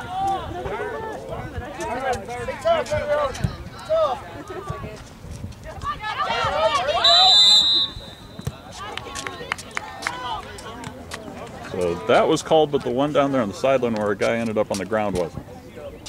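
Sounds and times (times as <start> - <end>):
people shouting: 5.8 - 9.0
referee's whistle blast: 7.0 - 8.6.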